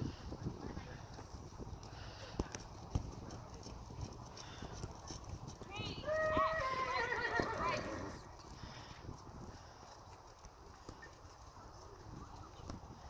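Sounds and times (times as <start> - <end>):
hoofbeats trotting on sand: 0.0 - 13.0
horse whinnying: 6.0 - 8.2.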